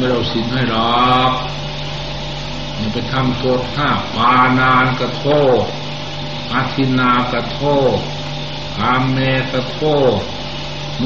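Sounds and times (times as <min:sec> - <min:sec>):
man talking: 0:00.0 - 0:01.5, 0:02.8 - 0:05.8, 0:06.5 - 0:08.1, 0:08.8 - 0:10.3
electrical hum and hiss: 0:00.0 - 0:11.0.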